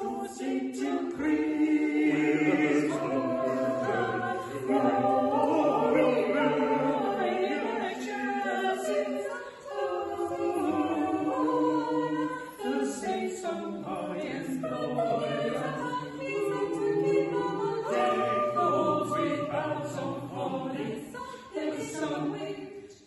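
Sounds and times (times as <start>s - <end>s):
mixed choir singing in harmony: 0.0s - 23.0s.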